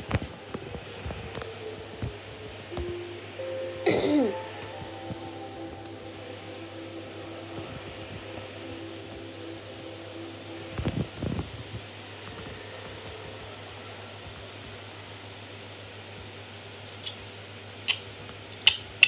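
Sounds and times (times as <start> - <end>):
faint tv tones: 0.0 - 16.2
constant low hum: 0.0 - 19.0
room hiss: 0.0 - 19.0.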